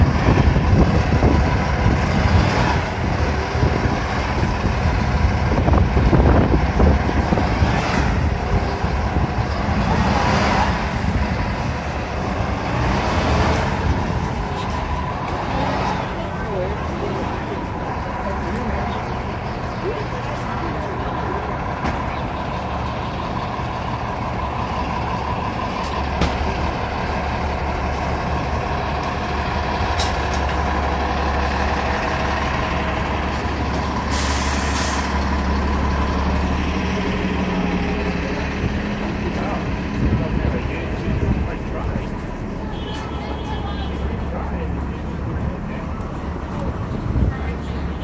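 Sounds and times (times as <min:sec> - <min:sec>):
bus engine hum with whine: 0:00.0 - 0:48.0
voices of passersby: 0:00.0 - 0:48.0
air brake hiss: 0:34.1 - 0:35.1.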